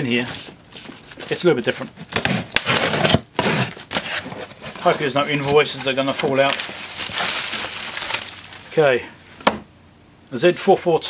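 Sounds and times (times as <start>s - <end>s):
cardboard scraping and crackling: 0.1s - 8.8s
packing tape tearing: 2.0s - 8.7s.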